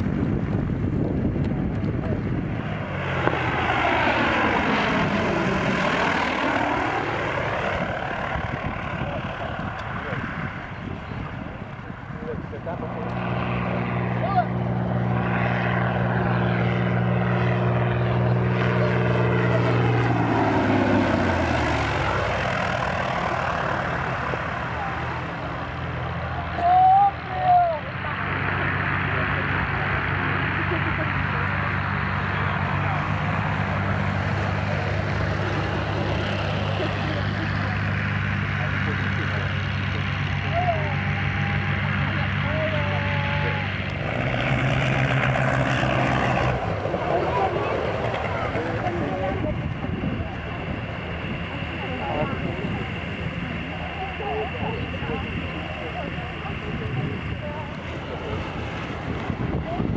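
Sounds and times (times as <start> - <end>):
propeller aircraft engine drone: 0.0 - 59.9.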